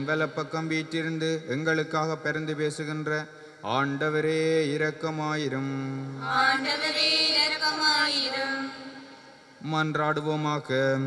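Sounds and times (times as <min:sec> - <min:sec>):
man chanting into a microphone: 0:00.0 - 0:06.5, 0:09.6 - 0:11.0.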